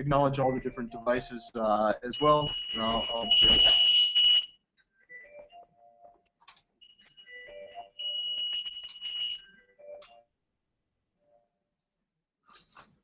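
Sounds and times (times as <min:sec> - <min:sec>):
steady high beep: 0:01.9 - 0:04.5, 0:06.8 - 0:09.6.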